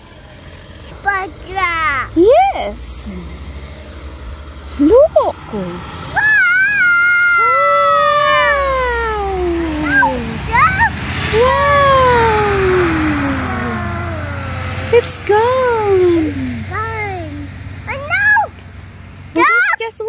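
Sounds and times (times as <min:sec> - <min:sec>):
child imitating a siren: 0:06.2 - 0:15.1.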